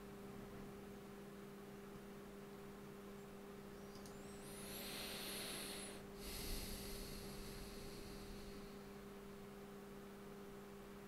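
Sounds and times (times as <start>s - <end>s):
low electrical hum: 0.0s - 11.0s
person breathing into microphone: 4.2s - 9.4s.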